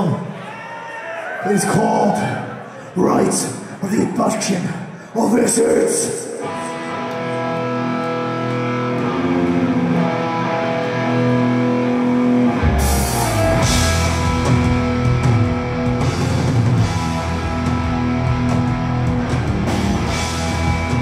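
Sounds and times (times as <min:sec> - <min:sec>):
distorted electric guitars: 0:06.2 - 0:21.0
drums and bass: 0:08.3 - 0:21.0.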